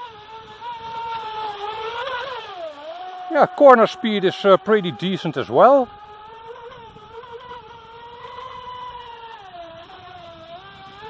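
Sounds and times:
toy boat motor whining: 0.0s - 11.0s.

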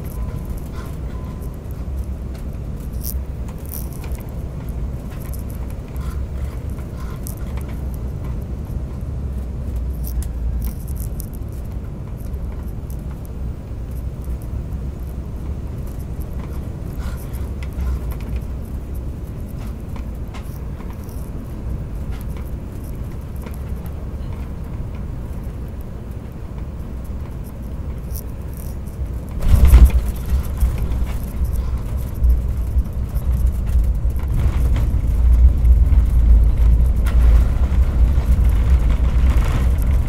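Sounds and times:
faint ticks and rattles: 0.0s - 40.0s
jet engines and wheels rumbling: 0.0s - 40.0s.

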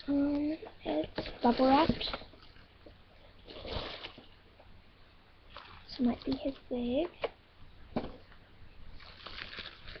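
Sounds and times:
bubble wrap crinkling: 5.5s - 6.8s, 8.9s - 10.0s.

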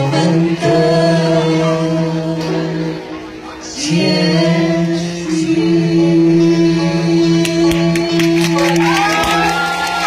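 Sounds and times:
group singing sustained chord: 0.0s - 9.8s
acoustic guitar: 0.0s - 10.0s.

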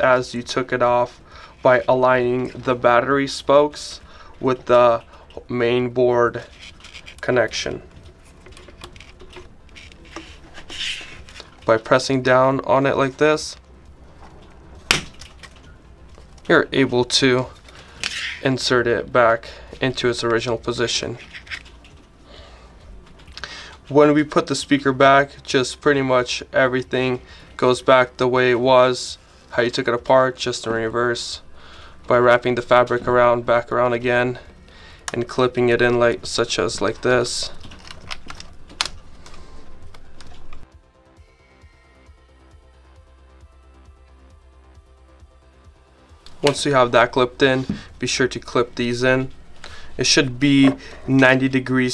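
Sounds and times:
quiet background music: 0.0s - 51.9s
circuit board snapping into place: 14.9s - 15.5s.

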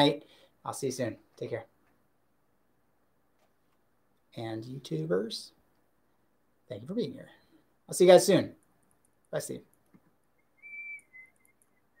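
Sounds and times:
man whistling softly: 10.3s - 12.0s.

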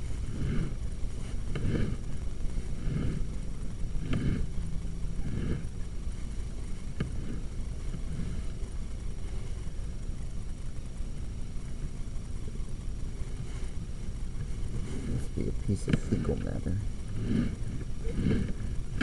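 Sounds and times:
low rumbling handling noise: 0.0s - 19.0s.

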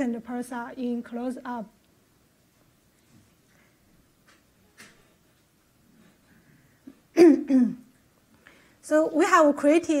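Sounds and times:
woman clearing her throat: 7.1s - 7.9s.

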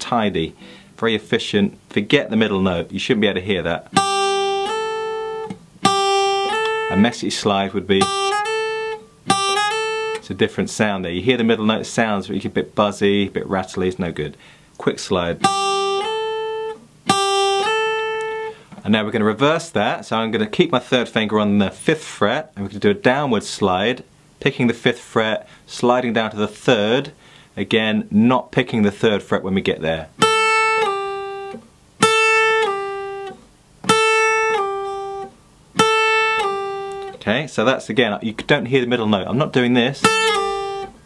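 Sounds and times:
acoustic guitar sliding note: 0.5s - 0.9s, 4.0s - 7.2s, 40.0s - 41.0s
acoustic guitar note slides: 0.5s - 1.0s.

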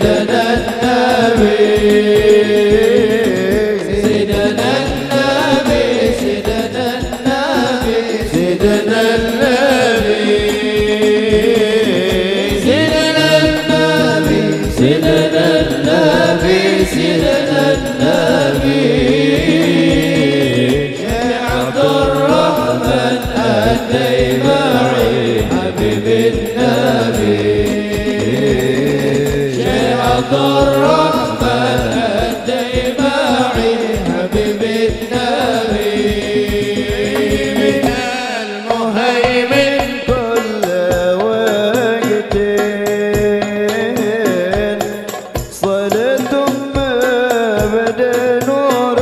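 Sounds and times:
frame drums beating: 0.0s - 49.0s
man singing into a microphone: 0.0s - 49.0s.

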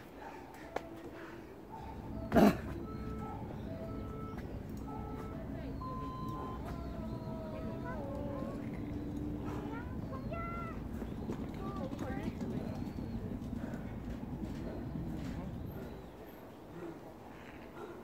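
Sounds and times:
faint voices calling: 0.0s - 18.0s
outdoor background noise: 0.0s - 18.0s.

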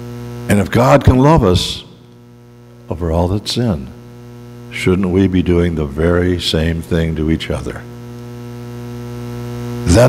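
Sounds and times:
electrical mains hum: 0.0s - 10.0s
man's voice: 0.5s - 2.0s, 2.9s - 4.0s, 4.7s - 7.9s.

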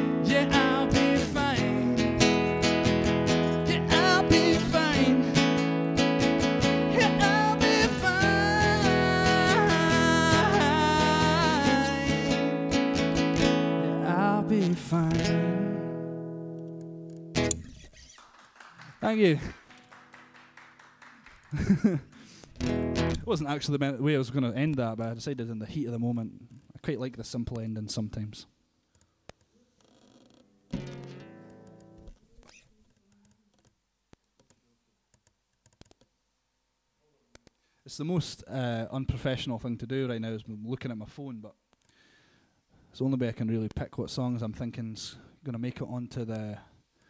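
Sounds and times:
person singing: 0.0s - 2.7s, 3.4s - 5.8s, 6.4s - 13.1s, 13.7s - 16.1s
acoustic guitar strumming: 0.0s - 17.9s, 22.3s - 23.3s, 30.7s - 32.1s.

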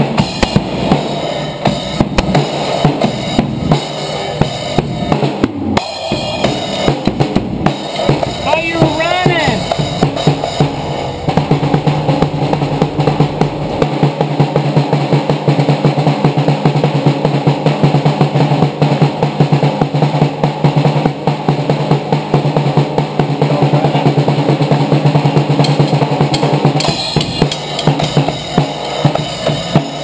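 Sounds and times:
fast dense drum kit: 0.0s - 30.0s
steady low note: 9.6s - 13.9s.

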